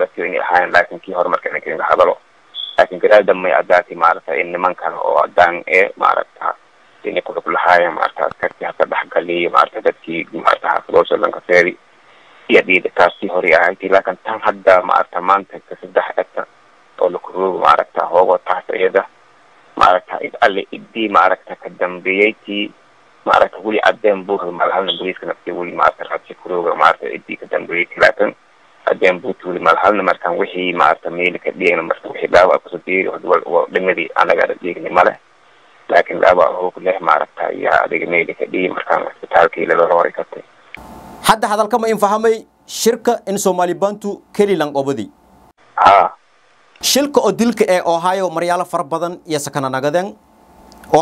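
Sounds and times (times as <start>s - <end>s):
man talking quickly: 0.0s - 11.8s, 12.5s - 19.1s, 19.8s - 22.7s, 23.3s - 35.2s, 35.9s - 40.4s, 41.2s - 45.1s, 45.8s - 46.2s, 46.8s - 50.2s.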